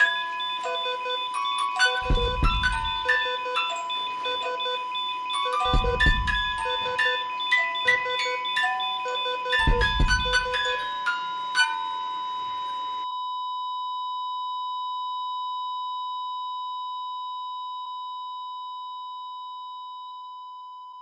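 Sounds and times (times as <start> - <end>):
light chiming music: 0.0 - 12.9
heart monitor flatline beep: 0.0 - 21.0.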